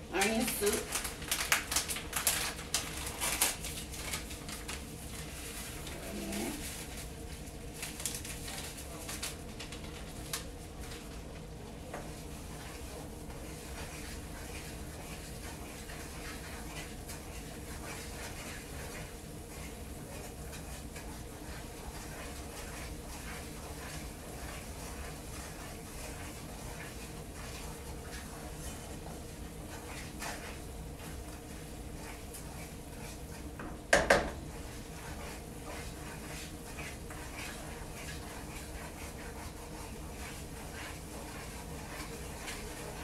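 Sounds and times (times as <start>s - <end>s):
wooden spoon scraping a skillet: 11.9s - 43.0s.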